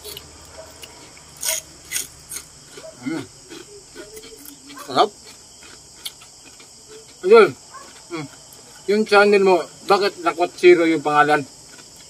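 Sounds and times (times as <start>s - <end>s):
chewing mouth sounds: 0.0s - 8.8s.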